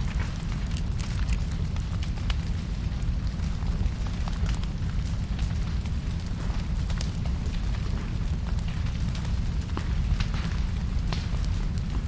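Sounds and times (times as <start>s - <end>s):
crackles and clicks: 0.0s - 12.0s
low rumble: 0.0s - 12.0s.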